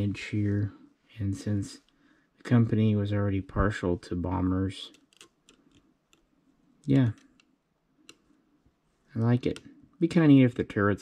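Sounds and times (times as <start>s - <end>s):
metal toy model clicking: 4.9s - 6.3s.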